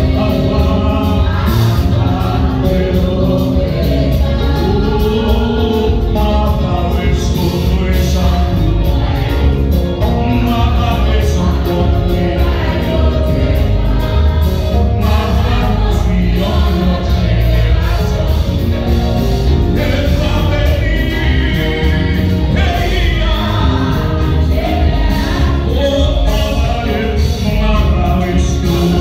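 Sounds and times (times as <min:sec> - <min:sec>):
congregation singing: 0:00.0 - 0:29.0
deep bass: 0:00.0 - 0:29.0.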